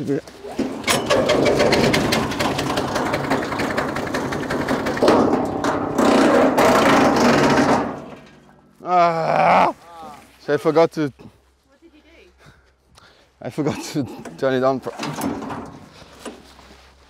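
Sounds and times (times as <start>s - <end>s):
wood chipper engine rattling: 0.6s - 8.6s.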